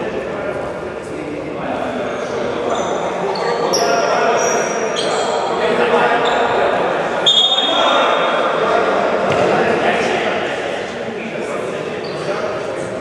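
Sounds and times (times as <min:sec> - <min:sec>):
shoe squeaks: 0:02.2 - 0:05.6, 0:06.2 - 0:08.2, 0:12.0 - 0:12.4.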